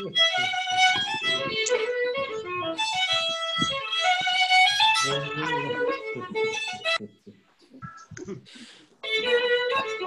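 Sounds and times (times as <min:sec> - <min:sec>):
fiddle playing a lively jig: 0:00.0 - 0:07.0, 0:09.0 - 0:10.0
plucked string accompaniment: 0:00.0 - 0:07.1, 0:09.0 - 0:10.0.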